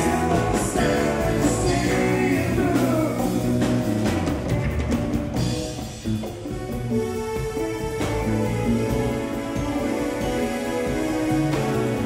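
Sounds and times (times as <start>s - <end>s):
drums: 0.0s - 12.0s
electric guitars and bass: 0.0s - 12.0s.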